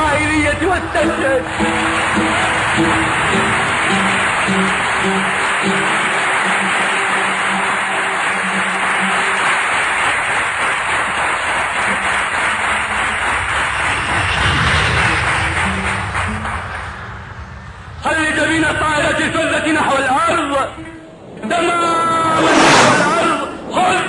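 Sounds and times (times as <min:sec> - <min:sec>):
audience applauding: 0:00.5 - 0:17.1.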